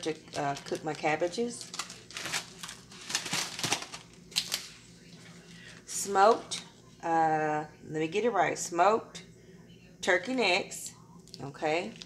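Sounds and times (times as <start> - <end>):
plastic bags and foam trays crinkling: 0.0 - 6.6.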